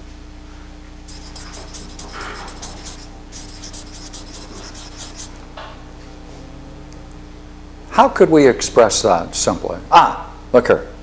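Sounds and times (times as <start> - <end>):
low electrical hum: 0.0 - 11.0
marker scratching on paper: 1.1 - 5.4.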